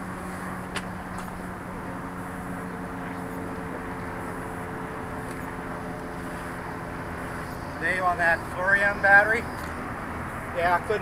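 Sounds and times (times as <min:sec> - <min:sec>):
low engine-like drone: 0:00.0 - 0:11.0
outdoor background noise: 0:00.0 - 0:11.0.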